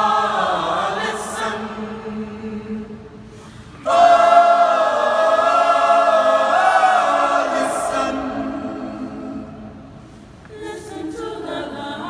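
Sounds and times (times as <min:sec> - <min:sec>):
choir singing a cappella: 0:00.0 - 0:12.0.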